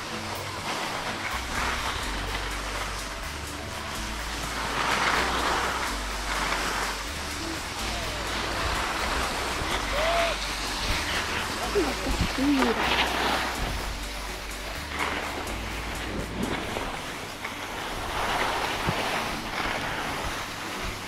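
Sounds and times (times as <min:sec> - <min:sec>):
background music with bass line: 0:00.0 - 0:21.0
skis scraping over snow: 0:00.0 - 0:21.0.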